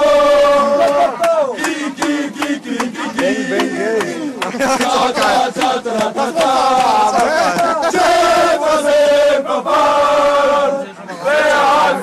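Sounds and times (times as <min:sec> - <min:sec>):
men chanting a fan song: 0:00.0 - 0:12.0.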